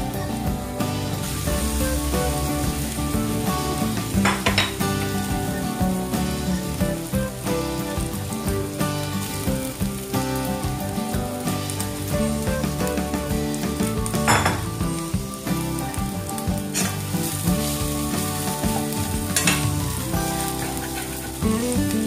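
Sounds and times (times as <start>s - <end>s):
food sizzling in oil: 0.0s - 22.0s
spatula stirring rice in pan: 16.6s - 21.5s.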